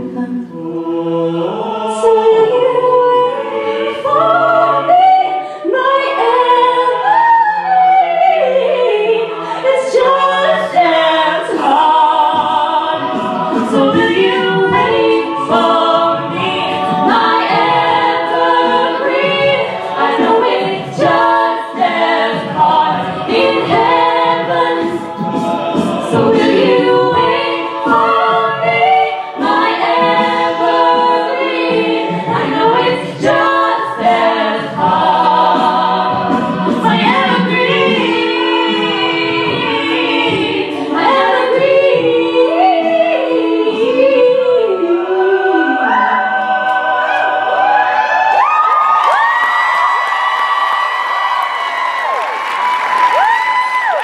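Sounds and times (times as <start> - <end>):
lead voice singing: 0.0 - 49.8
sung backing harmonies: 0.0 - 54.0.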